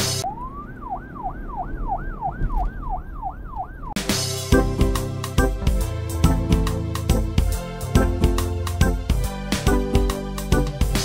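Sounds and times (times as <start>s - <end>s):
siren wailing: 0.0s - 4.0s
music with piano: 4.1s - 11.0s.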